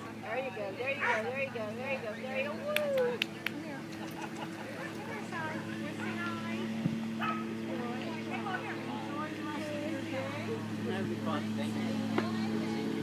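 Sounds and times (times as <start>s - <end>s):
faint indistinct voices: 0.0s - 13.0s
distant dogs barking: 0.8s - 3.2s, 7.1s - 9.0s.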